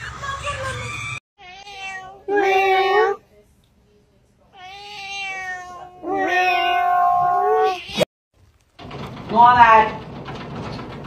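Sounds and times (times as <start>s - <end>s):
cat meowing: 0.8s - 3.2s, 4.6s - 8.0s.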